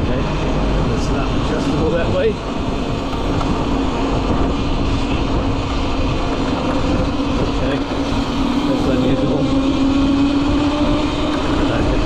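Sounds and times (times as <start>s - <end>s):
electric motor low hum: 0.0s - 12.0s
road noise: 0.0s - 12.0s
wind rumble on microphone: 0.0s - 12.0s.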